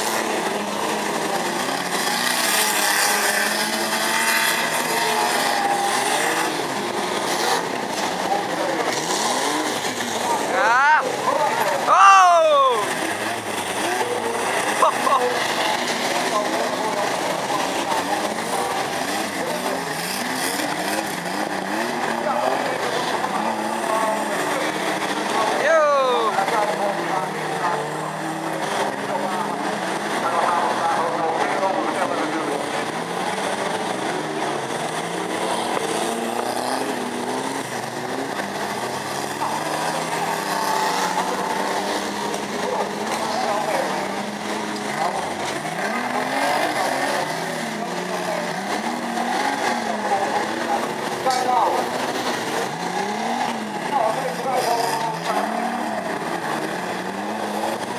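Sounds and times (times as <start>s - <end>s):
racing car engines revving: 0.0s - 57.9s.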